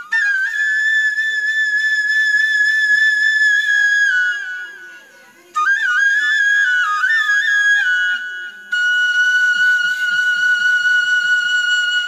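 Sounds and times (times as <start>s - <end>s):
flute holding high note: 0.0s - 12.0s.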